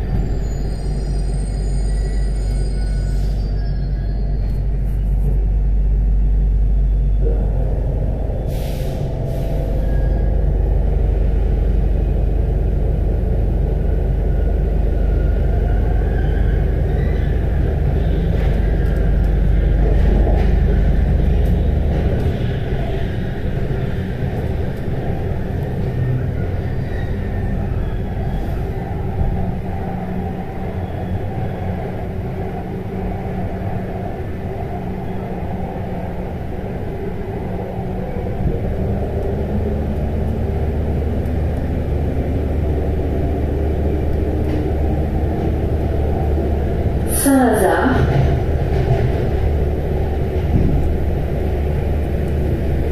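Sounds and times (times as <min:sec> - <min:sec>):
metro train rumble: 0:00.0 - 0:52.9.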